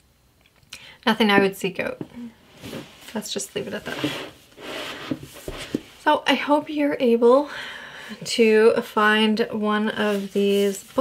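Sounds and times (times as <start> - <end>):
book pages rubbing and sliding: 2.6 - 6.0, 10.0 - 11.0.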